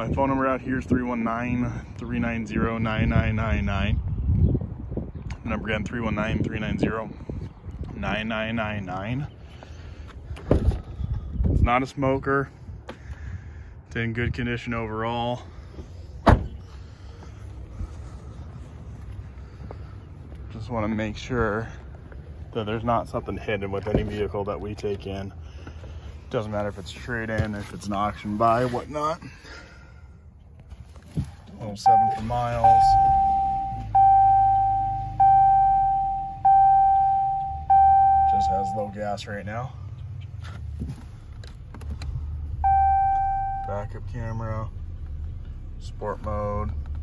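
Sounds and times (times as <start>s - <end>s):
car door shutting: 16.2s - 16.6s
bell-like warning chime: 31.9s - 39.0s
low steady hum: 42.4s - 46.7s.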